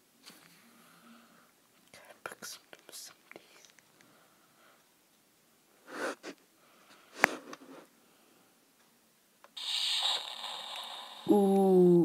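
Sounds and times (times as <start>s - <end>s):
faint whispering: 1.0s - 3.8s.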